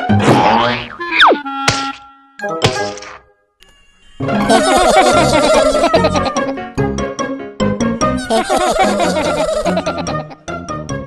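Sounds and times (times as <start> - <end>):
children's background music: 4.2 - 11.0.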